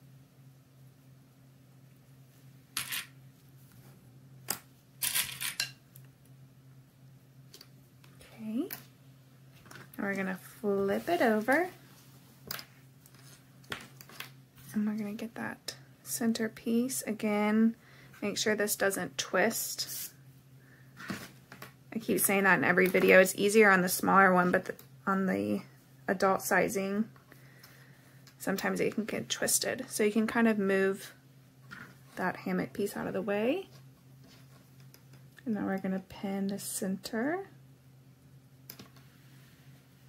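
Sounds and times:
fabric rustling: 10.6s - 12.4s.

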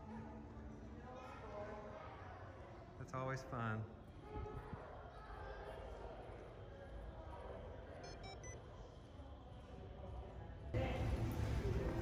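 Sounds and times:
faint electronic beeps: 7.9s - 8.7s.

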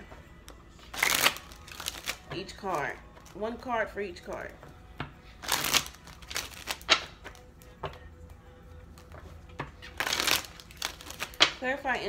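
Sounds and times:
cards being shuffled: 0.4s - 3.4s, 4.3s - 8.0s, 8.9s - 11.6s.

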